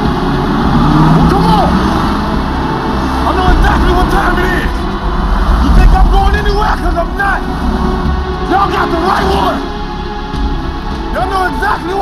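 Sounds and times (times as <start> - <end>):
car engines rumbling: 0.0 - 12.0
indistinct voices: 0.0 - 12.0.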